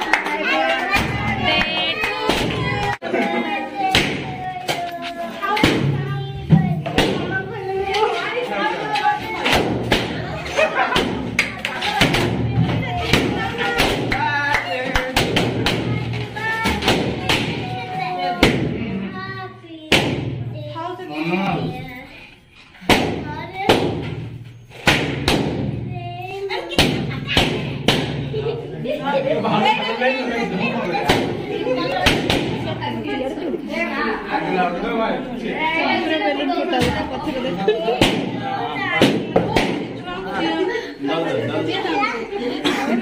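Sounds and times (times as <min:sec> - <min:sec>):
people talking and calling out: 0:00.0 - 0:43.0
voices in a room: 0:00.0 - 0:43.0.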